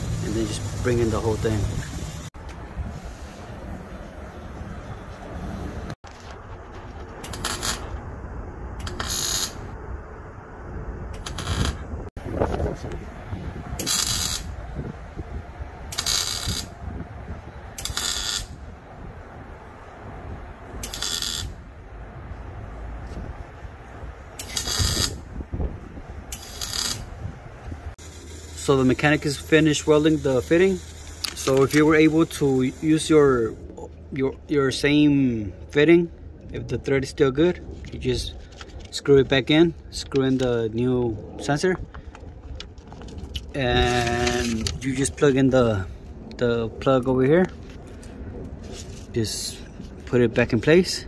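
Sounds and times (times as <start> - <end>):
arc welding crackle: 0.0 - 2.3, 7.1 - 8.0, 8.8 - 9.7, 11.2 - 11.8, 13.8 - 14.6, 15.9 - 16.8, 17.8 - 18.6, 20.8 - 21.6, 24.4 - 25.2, 26.3 - 27.1, 28.0 - 33.6
low rumble: 0.0 - 16.0.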